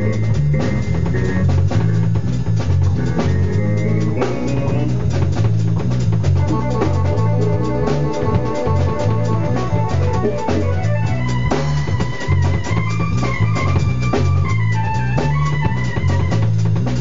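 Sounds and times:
drum kit: 0:00.0 - 0:17.0
electric bass guitar: 0:00.0 - 0:17.0
sustained organ-like keyboard chords: 0:00.0 - 0:17.0.

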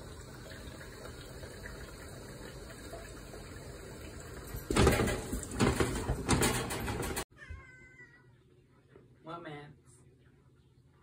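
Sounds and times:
cat meowing: 0:07.3 - 0:08.3.

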